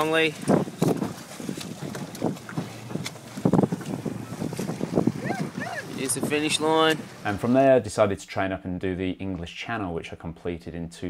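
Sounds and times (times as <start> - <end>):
wind buffeting microphone: 0.0 - 7.6
choppy water splashing: 0.0 - 8.1.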